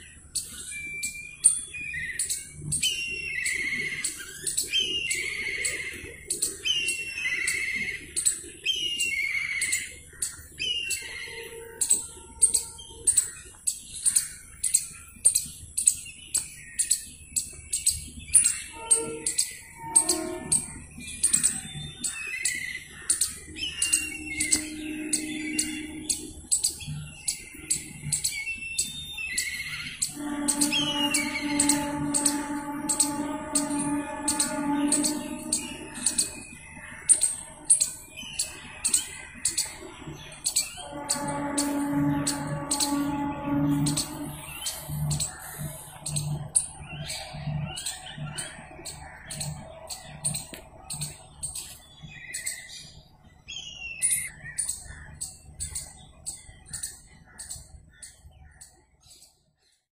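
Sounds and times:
high-pitched ticking chirps: 0:00.0 - 0:52.7
steady pitched hum: 0:00.0 - 0:59.2.

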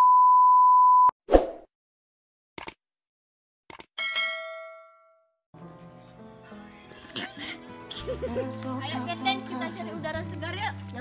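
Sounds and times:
background music: 0:05.6 - 0:11.0.

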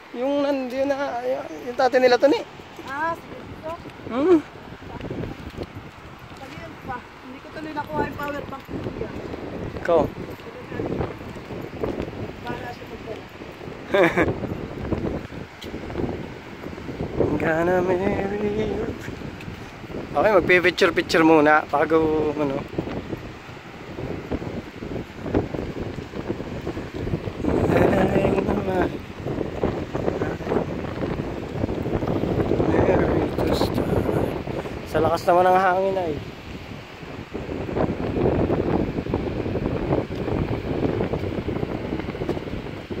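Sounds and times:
wind buffeting microphone: 0:00.0 - 0:43.0
surf breaking on rocks: 0:00.1 - 0:43.0.

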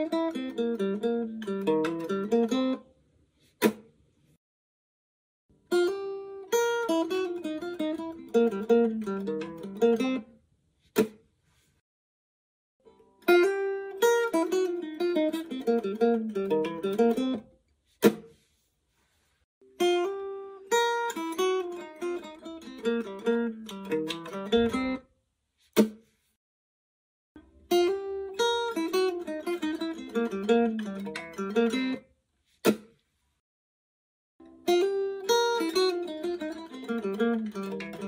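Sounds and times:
guitar playing fast single-note lick: 0:05.7 - 0:10.2, 0:13.3 - 0:17.4, 0:34.6 - 0:38.0.

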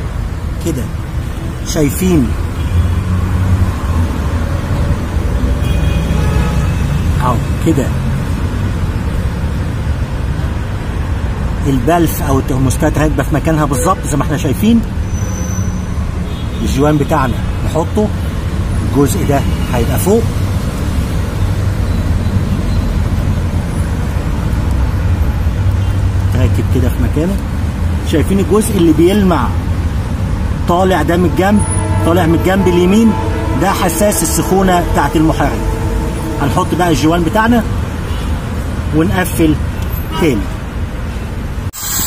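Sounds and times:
faint high tones: 0:13.7 - 0:14.3, 0:30.6 - 0:38.6
low rumble: 0:29.5 - 0:39.0.

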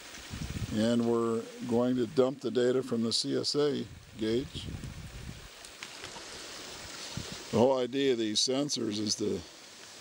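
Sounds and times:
creek water rushing over rocks: 0:00.0 - 0:10.0.

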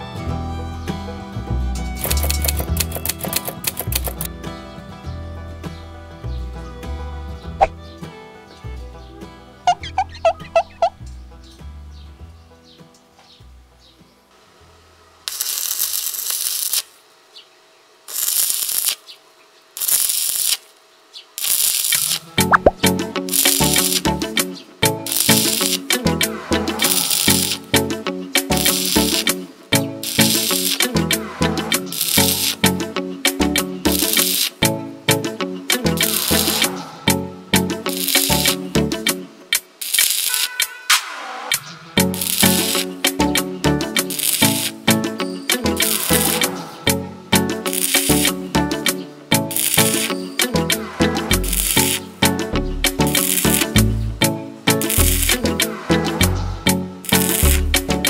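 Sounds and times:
background music with beat: 0:00.0 - 0:08.8, 0:22.4 - 0:39.7, 0:42.0 - 0:58.0
welding arc crackling: 0:02.0 - 0:04.3, 0:15.2 - 0:17.2, 0:18.0 - 0:58.0.

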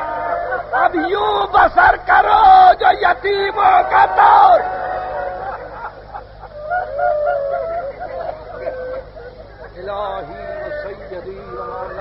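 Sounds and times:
people weeping and wailing: 0:00.0 - 0:12.0.

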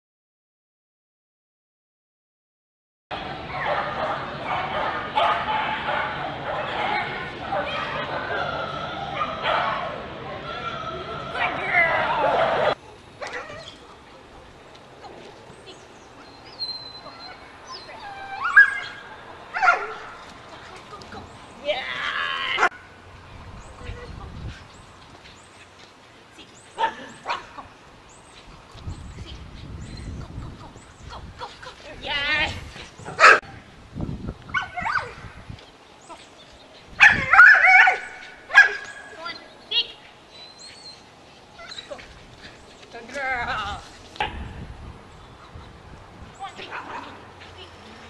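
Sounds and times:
dog barking: 0:03.6 - 0:08.4, 0:09.2 - 0:09.9, 0:19.6 - 0:20.0, 0:33.2 - 0:33.4, 0:37.0 - 0:38.9.

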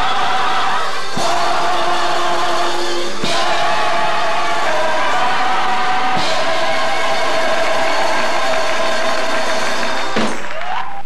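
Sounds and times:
gospel choir singing: 0:00.0 - 0:10.4
congregation noise: 0:00.0 - 0:11.0.

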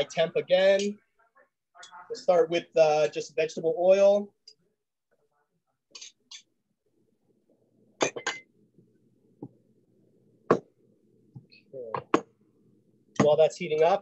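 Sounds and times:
glass bottles and pot clinking: 0:08.0 - 0:08.5.

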